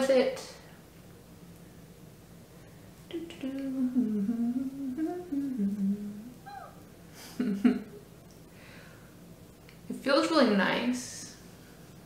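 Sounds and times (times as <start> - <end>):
woman humming a tune: 3.1 - 6.8.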